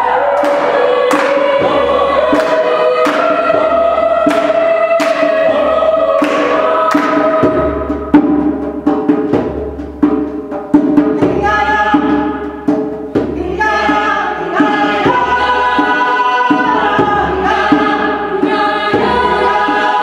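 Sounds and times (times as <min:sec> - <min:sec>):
choir singing sustained chords: 0:00.0 - 0:08.6, 0:13.6 - 0:20.0
hand claps: 0:00.4 - 0:01.5, 0:02.3 - 0:03.3, 0:04.3 - 0:05.3, 0:06.2 - 0:07.3.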